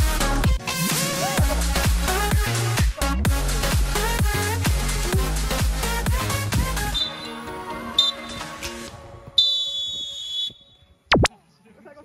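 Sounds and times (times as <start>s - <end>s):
electronic dance music: 0.0s - 8.9s
referee's whistle blasts: 7.0s - 7.4s, 8.0s - 8.4s, 9.4s - 10.8s.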